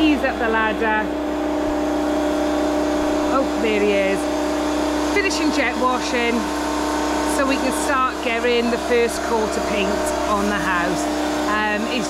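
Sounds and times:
pressure washer running: 0.0 - 12.0.

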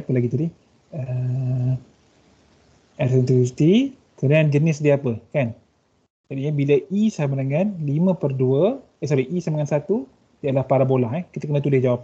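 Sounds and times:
man's drawn-out uhh: 1.0 - 1.9.

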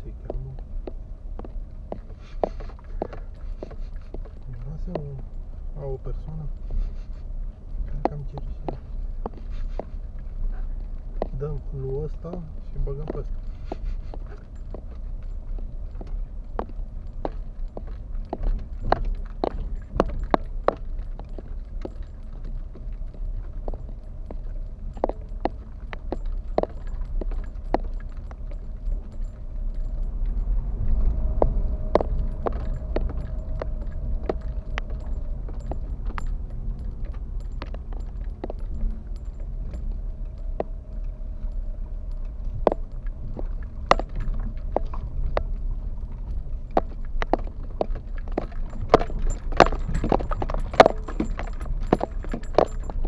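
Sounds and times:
car engine and tyres rumble: 0.0 - 53.0.

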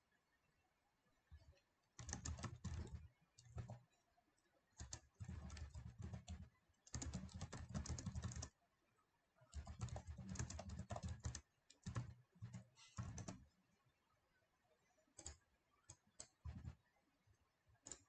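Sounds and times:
typing on computer keyboard: 2.0 - 3.9, 4.8 - 8.6, 9.5 - 13.5, 15.2 - 16.8.

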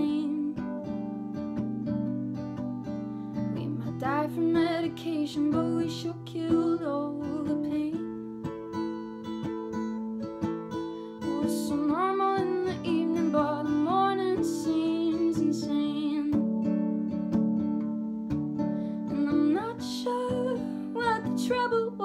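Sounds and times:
woman singing: 0.0 - 1.0, 3.5 - 8.1, 11.2 - 16.6, 19.0 - 22.0
acoustic guitar chords: 0.0 - 22.0.

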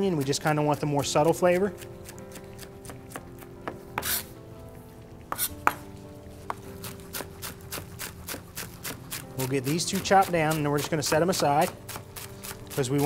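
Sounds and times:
knife tapping on cutting board: 5.3 - 5.8.

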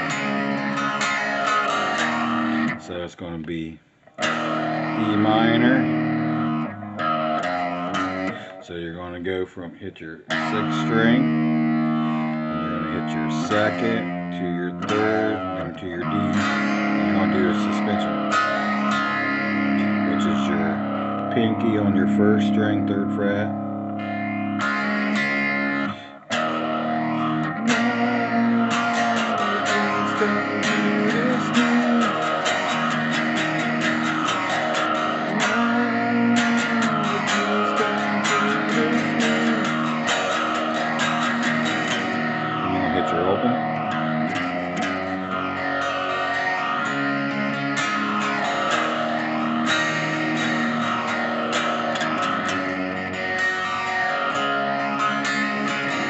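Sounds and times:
electric guitar playing rock chords: 0.0 - 9.2, 10.2 - 56.0.

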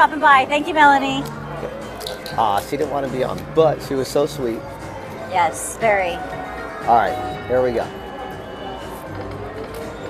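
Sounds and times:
casino music: 0.5 - 10.0.

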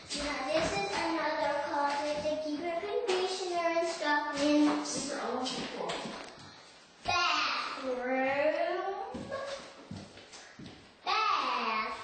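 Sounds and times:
young child singing: 0.0 - 5.9, 7.1 - 7.9, 11.1 - 12.0.

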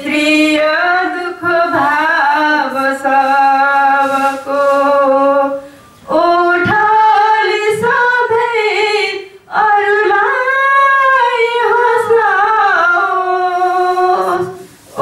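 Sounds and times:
woman singing unaccompanied: 0.0 - 15.0
short breaths: 5.6 - 6.1, 14.6 - 15.0.

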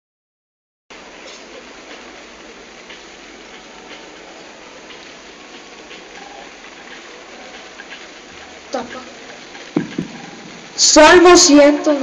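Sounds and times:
open-air ambience hiss: 0.9 - 12.0.

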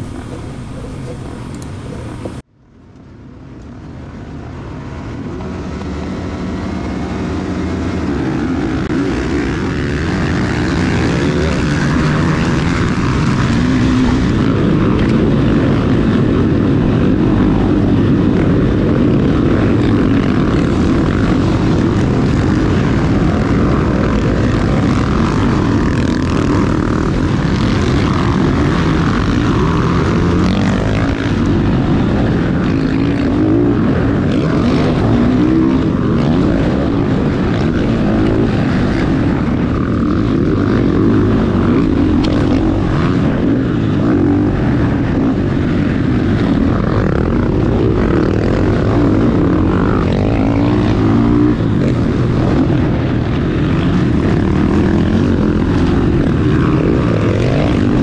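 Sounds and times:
dirt bikes racing: 0.0 - 2.5, 3.8 - 58.0
motocross bike engine revving: 5.5 - 58.0.

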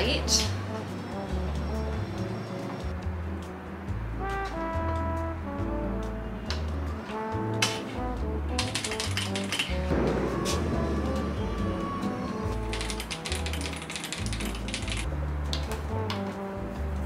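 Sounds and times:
background music: 0.0 - 17.0
typing on mechanical keyboard: 8.6 - 9.9, 12.6 - 15.1.

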